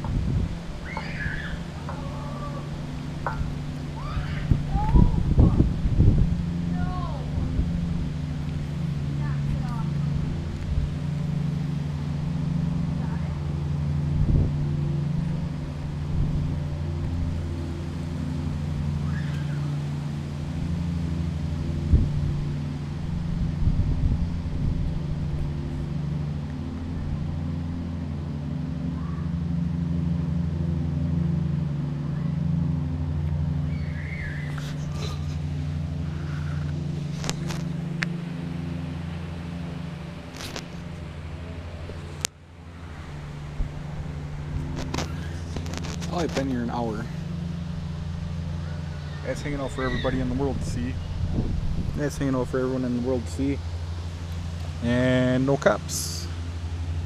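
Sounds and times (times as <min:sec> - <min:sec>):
low motor hum: 0:00.0 - 0:57.0.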